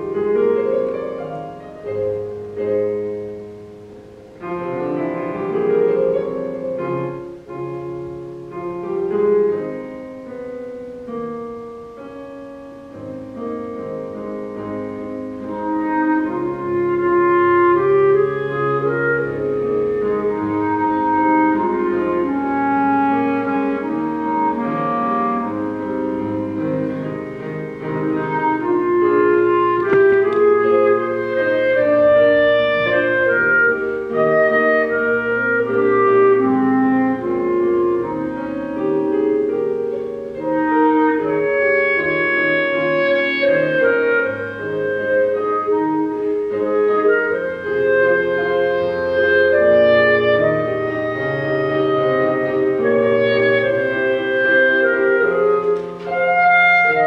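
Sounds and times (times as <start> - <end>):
slow keyboard music: 0.0 - 57.0.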